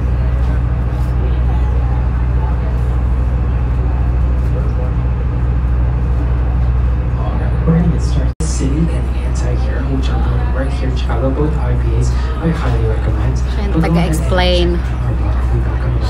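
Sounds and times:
boat engine humming: 0:00.0 - 0:16.0
passengers chattering: 0:00.0 - 0:16.0.

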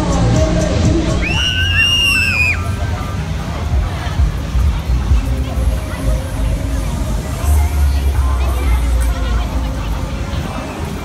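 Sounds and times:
fairground music with bass beat: 0:00.0 - 0:11.0
riders screaming: 0:01.2 - 0:02.8.

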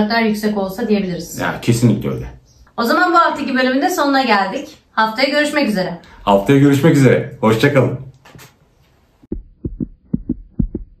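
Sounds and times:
heartbeat thumps: 0:09.3 - 0:11.0.

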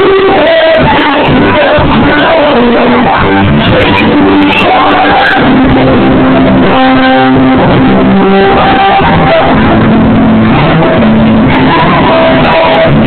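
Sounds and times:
live band playing loud: 0:00.0 - 0:13.0.

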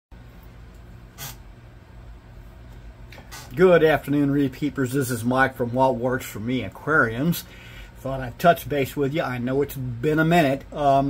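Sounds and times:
aquarium pump hum: 0:00.2 - 0:11.0
short burst of hiss: 0:01.2 - 0:01.4.

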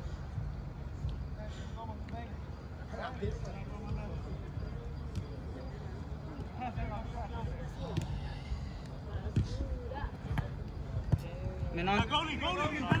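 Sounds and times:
steady low rumble: 0:00.0 - 0:12.4
soccer ball kicks: 0:05.0 - 0:05.6, 0:09.1 - 0:13.0.

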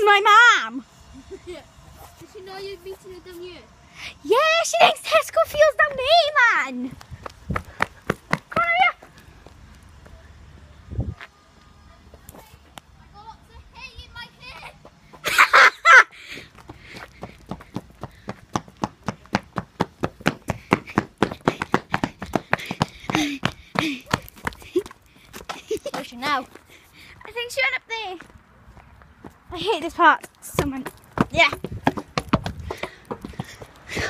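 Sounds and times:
running footsteps on pavement: 0:01.9 - 0:12.9, 0:16.2 - 0:34.0.

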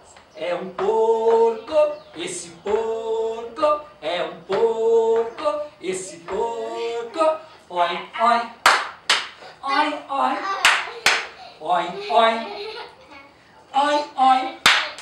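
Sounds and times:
voices chanting a song: 0:00.0 - 0:08.7
hand claps: 0:08.6 - 0:09.4, 0:10.6 - 0:11.3, 0:14.6 - 0:15.0.

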